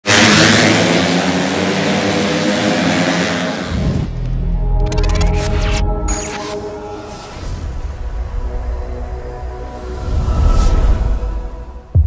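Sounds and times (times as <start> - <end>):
motorcycle engines revving: 0.0 - 4.3.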